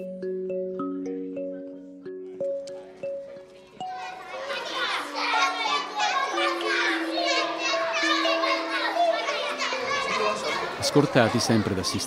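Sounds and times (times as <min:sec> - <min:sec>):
young children chattering: 0:01.3 - 0:12.0.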